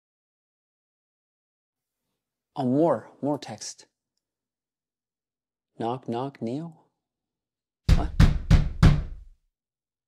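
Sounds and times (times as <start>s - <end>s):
knocking on a door: 7.9s - 9.3s.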